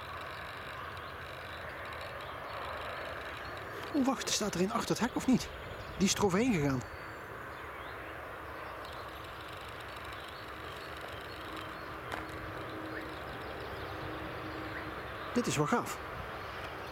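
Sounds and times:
faint constant hum: 0:00.0 - 0:16.9.

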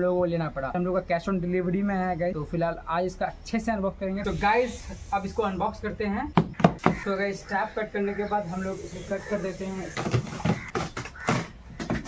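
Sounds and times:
man talking: 0:00.0 - 0:06.3, 0:07.0 - 0:10.2.

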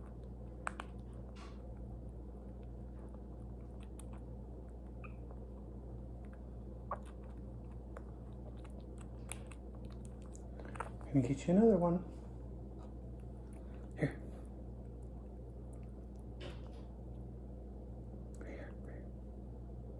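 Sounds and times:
low room hum: 0:00.0 - 0:19.9
wet suckling ticks: 0:06.2 - 0:11.2.

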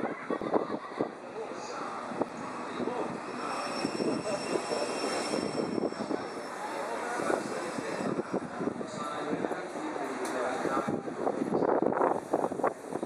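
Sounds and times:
thin high whine: 0:01.1 - 0:09.3.

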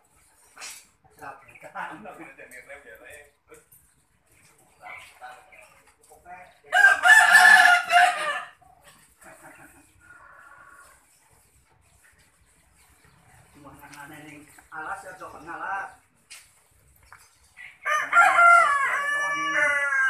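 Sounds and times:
rooster crowing: 0:06.7 - 0:08.6, 0:17.8 - 0:20.0.

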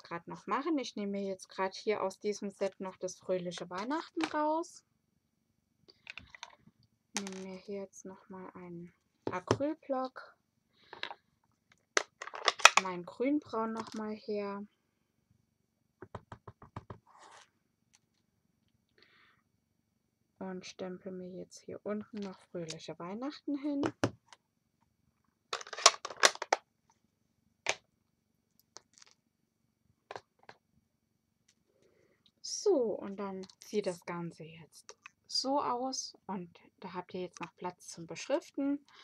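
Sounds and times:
woman speaking: 0:00.0 - 0:04.8, 0:07.2 - 0:10.3, 0:12.8 - 0:14.7, 0:20.4 - 0:24.0, 0:32.4 - 0:38.9
plastic craft supplies clicking: 0:12.0 - 0:12.9, 0:25.6 - 0:26.6.

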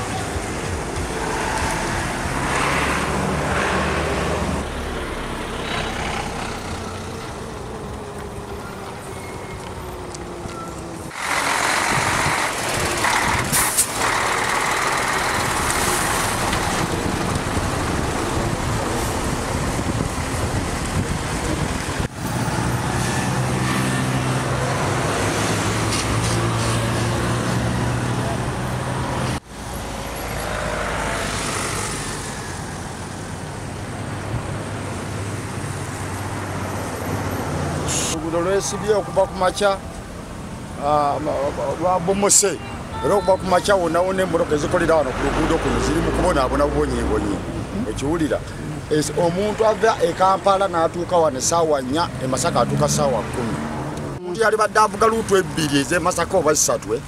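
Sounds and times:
traffic engines idling: 0:00.0 - 0:57.0.

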